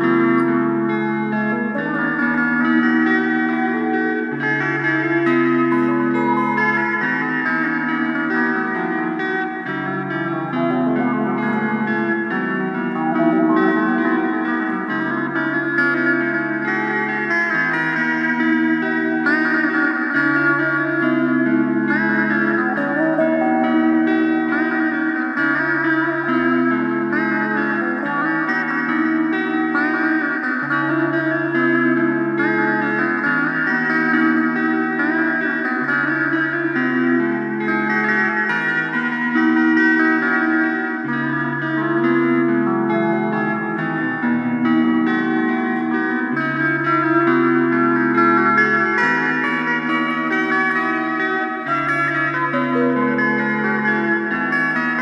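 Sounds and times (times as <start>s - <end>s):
blues rock guitar: 0.0s - 55.0s
slide guitar phrases: 0.0s - 55.0s.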